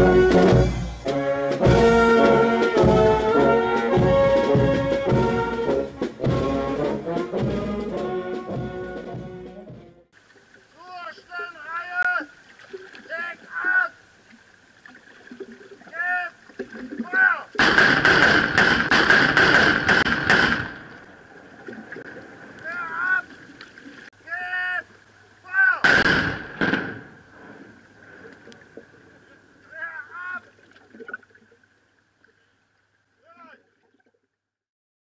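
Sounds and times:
shouted commands: 10.8s - 12.3s, 13.1s - 14.0s, 15.9s - 16.4s, 17.0s - 17.5s, 22.6s - 23.3s, 24.2s - 25.9s, 29.7s - 30.4s, 33.2s - 33.6s
rifle volley: 17.0s - 21.1s, 25.8s - 27.7s
loud dense crackling: 17.6s - 21.0s, 25.8s - 28.3s.

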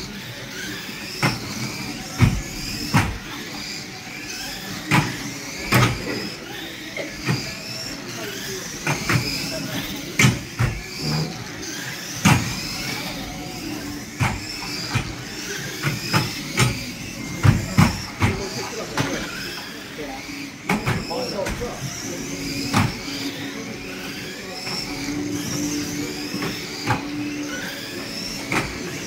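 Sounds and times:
toy car motors whining: 0.0s - 29.0s.

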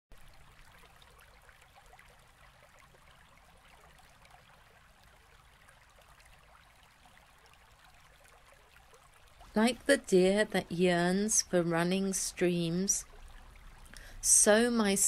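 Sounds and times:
stream water trickling: 0.1s - 15.0s.

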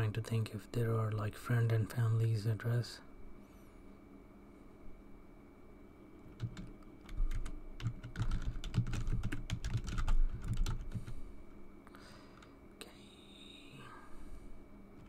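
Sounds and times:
typing on computer keyboard: 6.3s - 11.1s.

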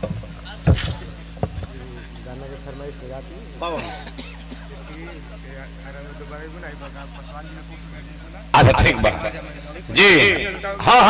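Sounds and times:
indistinct talk through microphone: 0.0s - 11.0s
low electrical hum: 0.0s - 11.0s.

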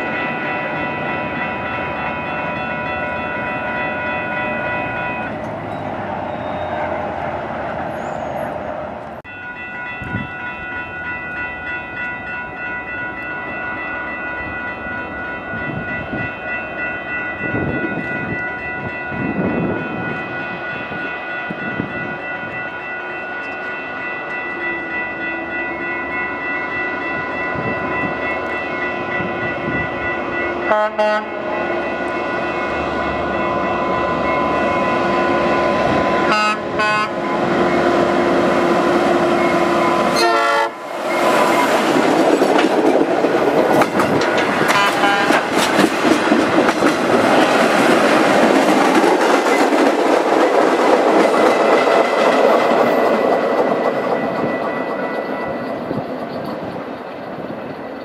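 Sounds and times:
crossing warning bells ringing: 0.0s - 58.0s
train rumbling on tracks: 0.0s - 58.0s.

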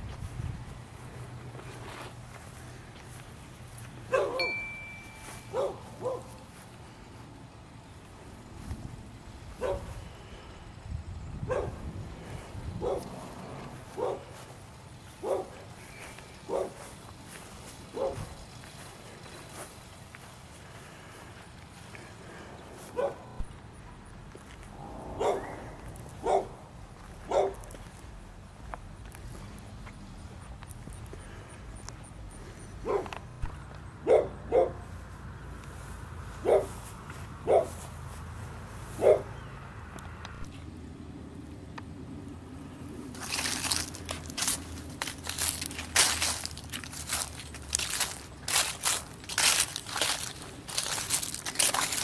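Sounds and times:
footsteps crunching dry leaves: 0.0s - 10.5s, 12.0s - 23.6s, 24.2s - 31.5s, 43.0s - 52.0s
dog barking: 4.1s - 4.4s, 5.5s - 6.3s, 9.6s - 9.9s, 11.5s - 11.8s, 12.8s - 13.1s, 13.9s - 14.3s, 15.2s - 15.6s, 16.5s - 16.8s, 17.9s - 18.3s, 22.9s - 23.3s, 25.2s - 25.6s, 26.2s - 26.6s, 27.3s - 27.6s, 32.8s - 33.2s, 34.0s - 34.9s, 36.4s - 36.8s, 37.4s - 37.8s, 39.0s - 39.3s.

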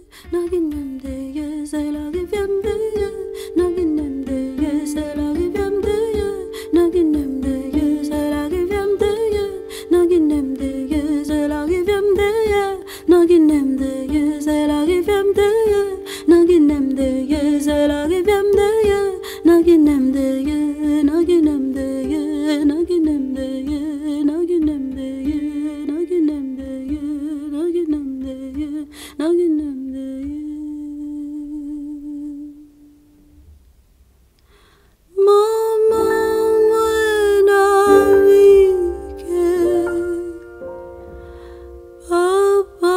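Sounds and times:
woman singing: 0.0s - 33.0s, 35.1s - 41.0s, 41.7s - 42.9s
person humming a melody: 35.2s - 42.9s.

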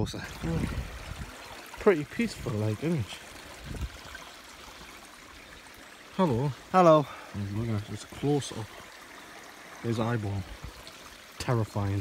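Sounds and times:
stream trickling over stones: 0.0s - 12.0s.

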